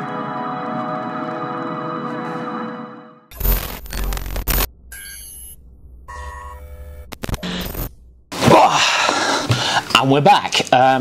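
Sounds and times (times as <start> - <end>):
stuttering electronic tones: 3.3 - 7.9.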